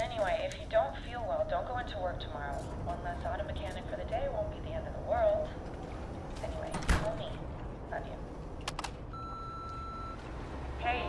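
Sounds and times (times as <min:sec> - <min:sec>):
electronic beep: 0:09.1 - 0:10.2.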